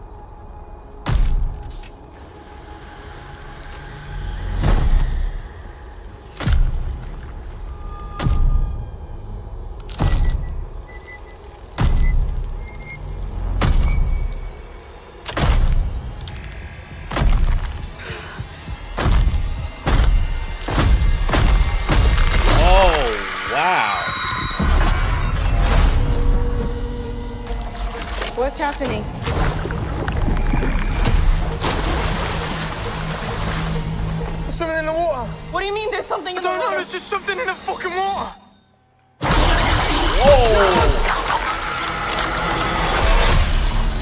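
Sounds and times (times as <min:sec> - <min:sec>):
dark drone with held tones: 0:00.0 - 0:34.5.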